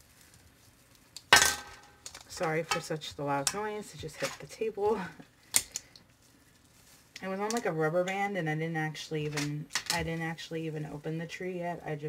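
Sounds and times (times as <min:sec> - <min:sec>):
metal clank hitting a table: 0:01.4 - 0:02.0.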